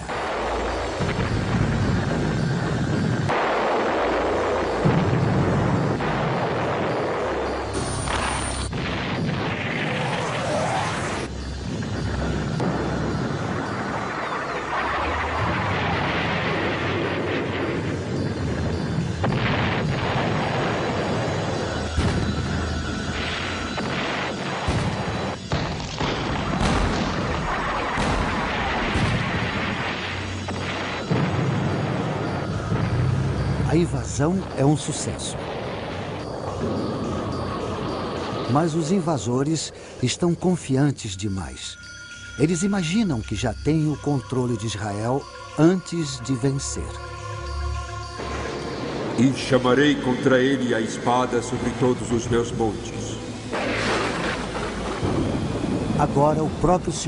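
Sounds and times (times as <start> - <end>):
thunder crashing and rolling: 0.0 - 39.4, 48.2 - 57.0
rain: 0.0 - 57.0
artillery gun blasts: 12.5 - 33.5, 53.5 - 56.0
long rumble: 51.3 - 57.0.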